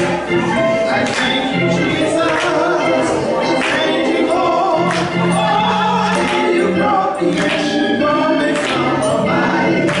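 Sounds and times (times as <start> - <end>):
group gospel singing: 0.0 - 10.0.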